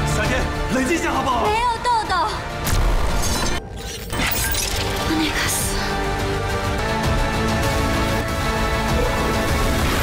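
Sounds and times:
dramatic film score music: 0.0 - 10.0.

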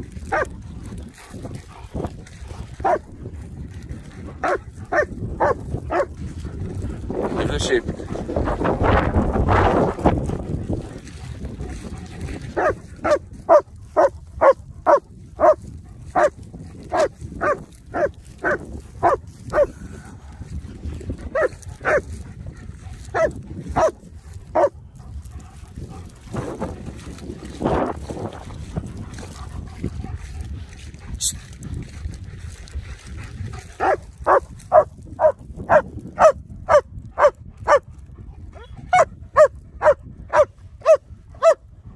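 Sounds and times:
dog barking: 0.3 - 0.6, 2.5 - 3.1, 4.4 - 6.2, 12.5 - 20.0, 21.3 - 22.1, 23.0 - 24.8, 33.8 - 37.8, 38.6 - 41.6.

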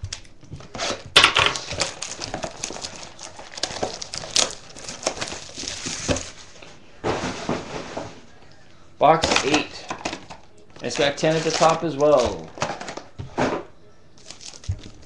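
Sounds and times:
plastic shrink-wrap crinkling and tearing: 0.1 - 6.5, 9.2 - 13.1, 14.2 - 15.0.

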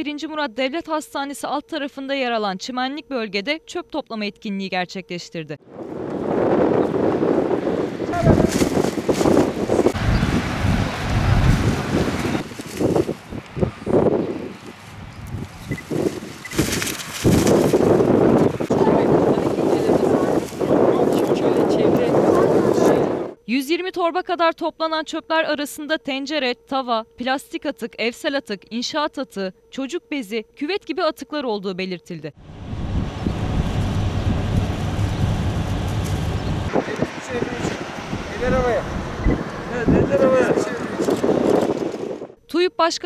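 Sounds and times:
wind on microphone: 5.6 - 23.4, 32.4 - 42.4
plastic bin bag rustling: 8.2 - 9.9, 12.4 - 13.3, 15.8 - 18.2.

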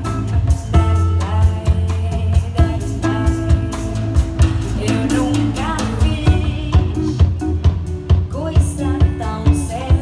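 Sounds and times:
woman singing: 0.0 - 7.5, 8.1 - 10.0
bass guitar: 0.0 - 10.0
drum kit beat: 0.0 - 10.0.

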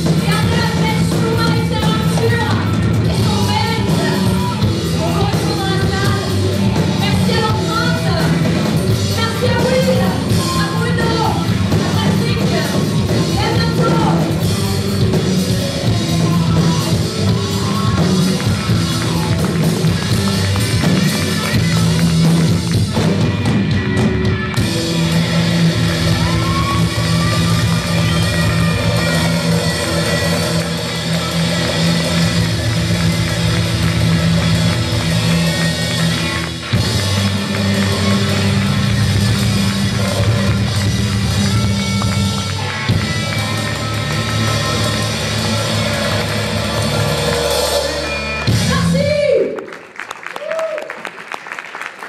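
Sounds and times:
live rock band playing: 0.0 - 49.3.

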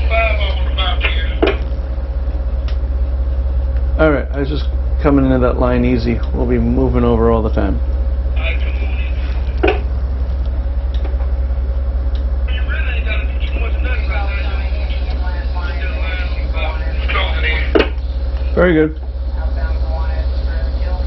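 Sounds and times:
boat engines droning: 0.0 - 21.0
faint steady hum: 0.0 - 21.0.

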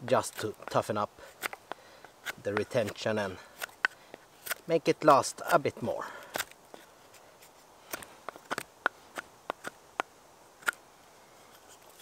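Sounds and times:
knife cutting wooden stick: 0.2 - 5.6, 6.3 - 10.8.

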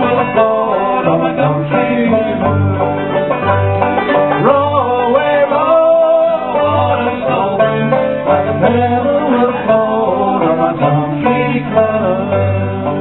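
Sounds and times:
man singing: 0.0 - 2.7, 4.0 - 13.0
string band playing: 0.0 - 13.0.

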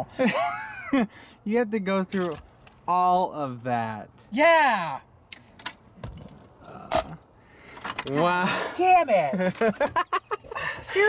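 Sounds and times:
plastic connectors clicking: 2.1 - 2.4.

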